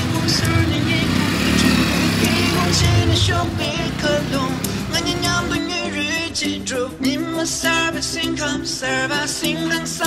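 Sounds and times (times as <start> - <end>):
motorcycle engine running: 0.0 - 6.2
background music: 0.0 - 10.0.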